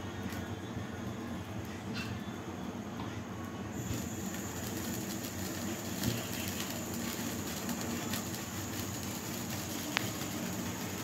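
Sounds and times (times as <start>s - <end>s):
egg frying hiss: 3.7s - 11.0s.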